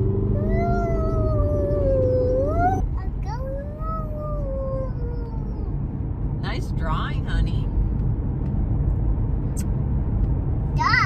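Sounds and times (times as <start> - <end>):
car road noise rumble: 0.0 - 11.0.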